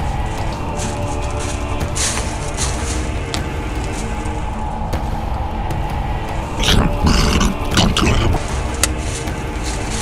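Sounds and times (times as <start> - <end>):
background music: 0.0 - 10.0
rough growl-like vocal sound: 6.6 - 8.4.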